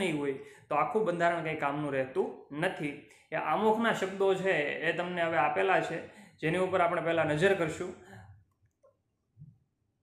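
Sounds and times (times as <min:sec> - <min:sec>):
man speaking: 0:00.0 - 0:08.0.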